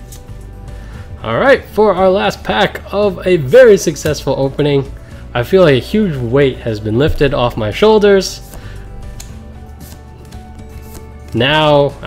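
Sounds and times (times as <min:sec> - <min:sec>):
trading cards rubbing and sliding: 0:00.0 - 0:00.7, 0:07.2 - 0:12.0
soft background music: 0:00.0 - 0:12.0.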